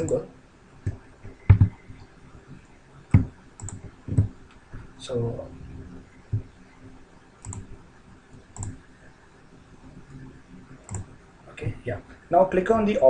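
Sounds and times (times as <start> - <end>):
faint computer mouse clicks: 3.1 - 3.9, 7.4 - 7.7, 8.5 - 8.8, 10.9 - 11.1.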